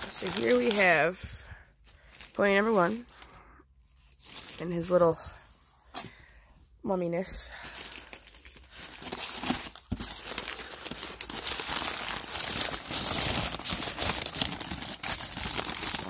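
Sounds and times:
packing paper crinkling: 0.0 - 5.3, 7.5 - 16.0.

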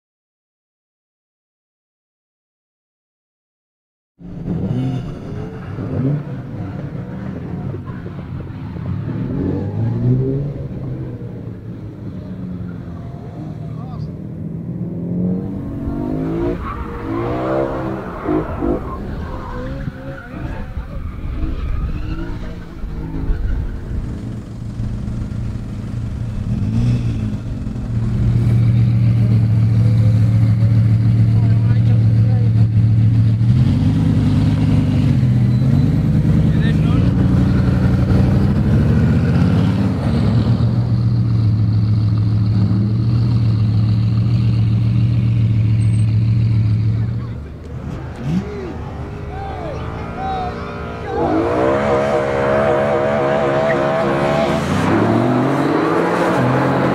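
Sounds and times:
sports car engine revving: 14.3 - 56.9
engine drone idling: 22.8 - 33.4.

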